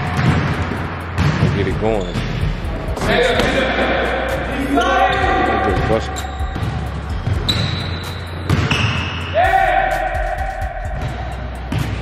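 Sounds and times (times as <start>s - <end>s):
basketball bouncing on wood floor: 8.5s - 9.0s.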